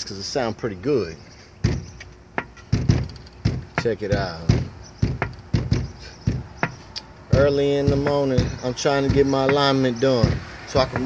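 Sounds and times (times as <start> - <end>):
knocking on glass window: 1.6 - 11.0.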